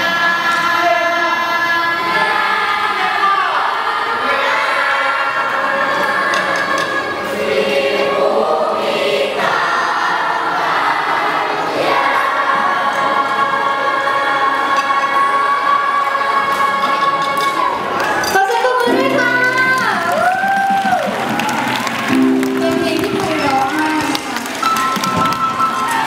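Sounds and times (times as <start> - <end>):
children singing together: 0.0 - 18.0.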